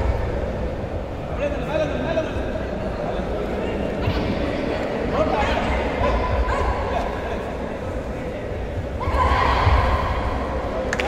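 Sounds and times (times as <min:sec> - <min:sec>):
din of busy hall: 0:00.0 - 0:11.0.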